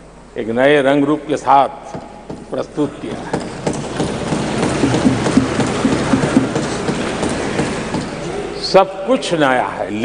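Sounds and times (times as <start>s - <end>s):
people thumping wooden desks: 1.9s - 8.6s.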